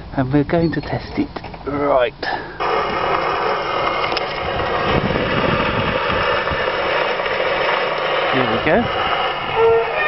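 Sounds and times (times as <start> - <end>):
phonograph surface hiss: 0.9 - 10.0.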